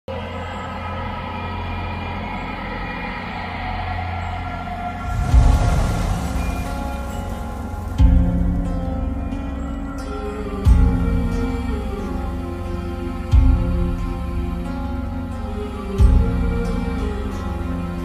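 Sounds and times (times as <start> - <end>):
cinematic held chords: 0.1 - 18.0
deep low hit: 5.0 - 9.5.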